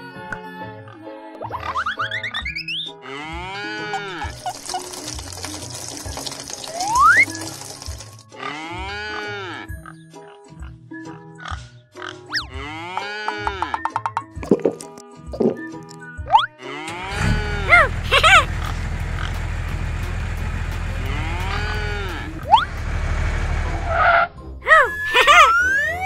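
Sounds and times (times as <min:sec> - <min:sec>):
children's background music: 0:00.0 - 0:19.4, 0:20.0 - 0:26.0
pig-like squealing cries: 0:02.8 - 0:04.3, 0:08.4 - 0:09.7, 0:12.3 - 0:13.8
rising whistle slides: 0:24.9 - 0:26.0.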